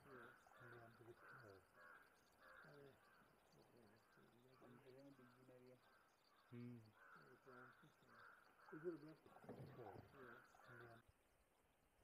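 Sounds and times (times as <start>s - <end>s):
faint bird calls: 0.0s - 11.0s
faint voices murmuring: 2.5s - 11.0s.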